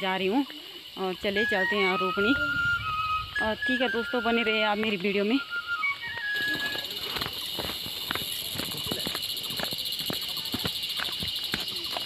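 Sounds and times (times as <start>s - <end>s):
high-pitched hiss: 0.0s - 12.0s
footsteps in sandals on stony path: 4.4s - 12.0s.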